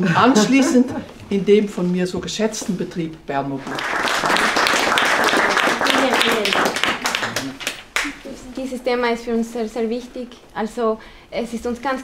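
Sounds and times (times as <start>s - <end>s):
group applauding: 3.6s - 8.3s.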